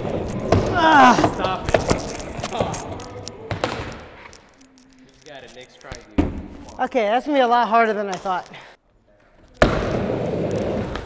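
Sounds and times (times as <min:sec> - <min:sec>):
skateboard knocking and rolling: 0:09.6 - 0:11.0.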